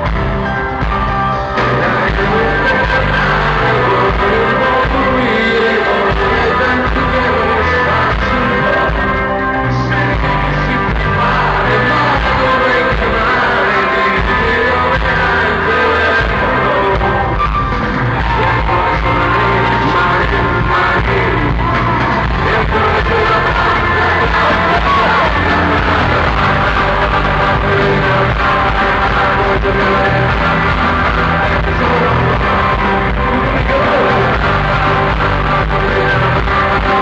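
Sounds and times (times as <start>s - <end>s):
live rock band playing: 0.0s - 37.0s
person singing: 0.0s - 37.0s.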